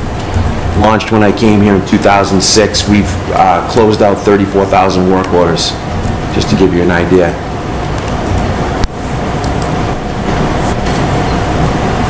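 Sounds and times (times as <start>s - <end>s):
faint steady hum: 0.0s - 12.0s
room noise rumble and hiss: 0.0s - 12.0s.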